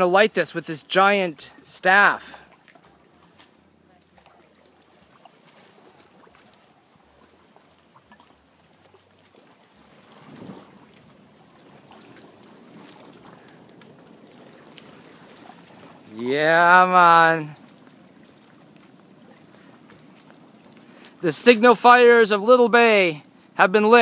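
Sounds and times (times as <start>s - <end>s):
fire crackling: 4.0s - 24.0s
rush of flames: 10.0s - 10.9s.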